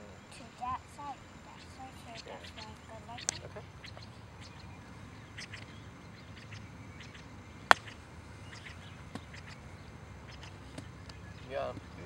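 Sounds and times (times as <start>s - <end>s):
golf club striking ball: 7.5s - 9.6s.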